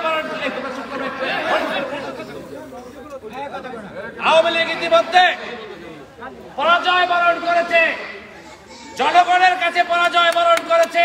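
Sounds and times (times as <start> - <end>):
chatter of voices: 0.0 - 11.0.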